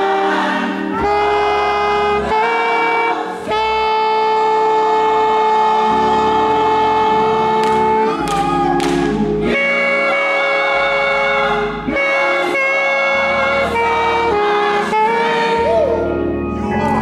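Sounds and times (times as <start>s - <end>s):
choir singing held chords: 0.0s - 17.0s.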